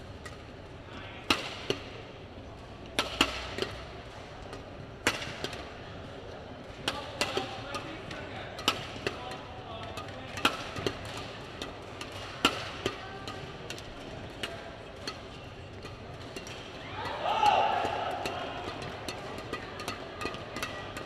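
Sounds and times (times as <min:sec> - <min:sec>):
arena hall hum: 0:00.0 - 0:21.0
rackets hitting shuttlecock: 0:00.2 - 0:21.0.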